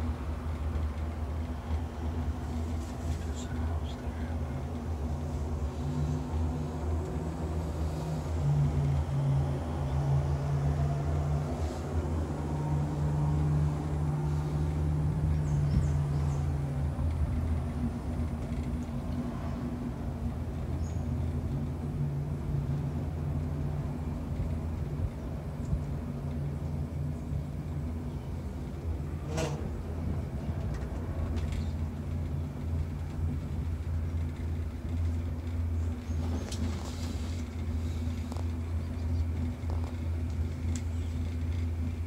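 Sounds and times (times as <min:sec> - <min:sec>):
gondola humming rumble: 0:00.0 - 0:42.0.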